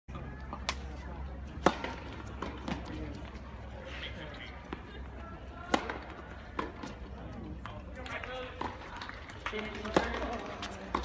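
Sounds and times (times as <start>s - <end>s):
people talking: 0.1s - 11.0s
tennis racquet striking ball: 1.6s - 2.9s, 5.6s - 6.9s, 9.8s - 11.0s.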